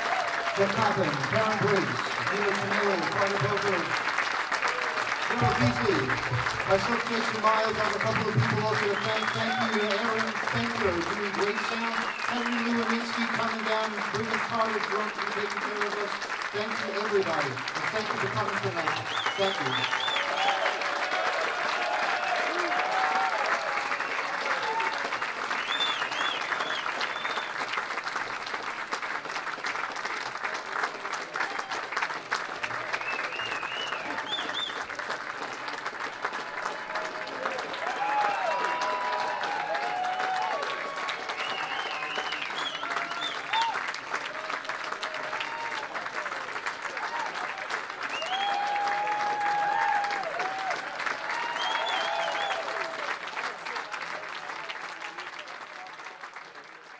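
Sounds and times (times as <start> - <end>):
crowd cheering and whooping: 0.0 - 1.8, 18.9 - 27.4, 36.4 - 46.2, 46.9 - 53.2
audience applauding: 0.0 - 56.9.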